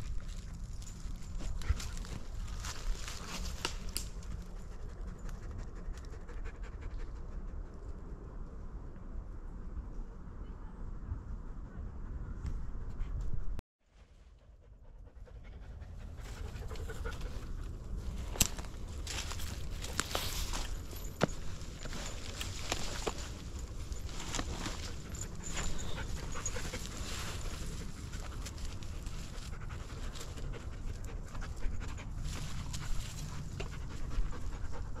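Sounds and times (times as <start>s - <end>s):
dog panting: 14.6s - 17.8s, 23.0s - 35.0s.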